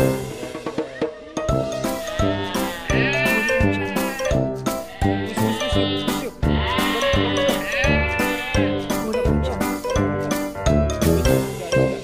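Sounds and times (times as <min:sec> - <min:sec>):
upbeat background music: 0:00.0 - 0:12.0
goat bleating: 0:01.7 - 0:09.0.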